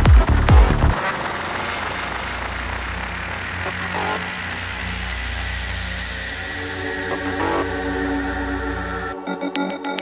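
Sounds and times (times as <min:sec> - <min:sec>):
low buzzing drone: 0:00.0 - 0:09.4
hiss: 0:00.9 - 0:09.0.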